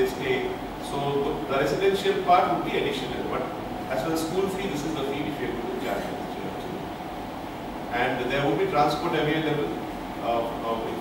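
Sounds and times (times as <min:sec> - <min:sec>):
room noise rumble and hiss: 0:00.0 - 0:11.0.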